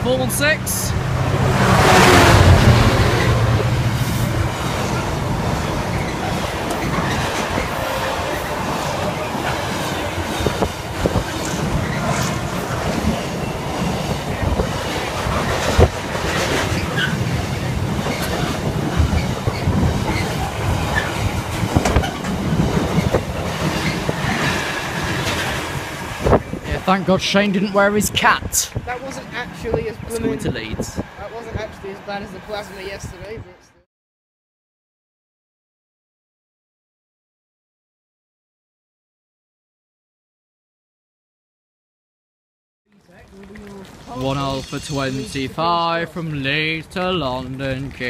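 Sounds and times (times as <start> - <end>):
diesel locomotive engine: 0.0 - 33.5
freight train rumble: 0.0 - 33.5.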